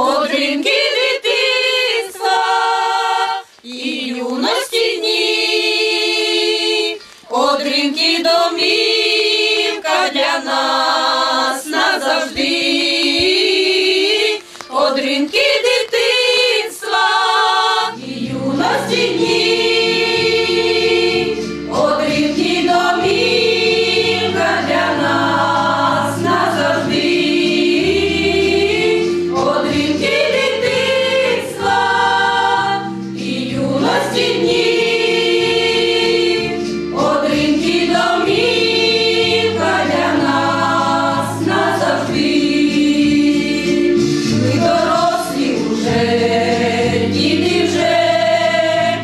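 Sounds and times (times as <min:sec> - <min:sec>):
women's choir singing in harmony: 0:00.0 - 0:49.0.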